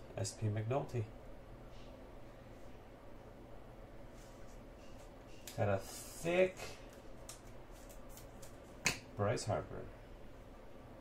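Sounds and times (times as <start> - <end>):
trading cards scraping: 4.2 - 8.8.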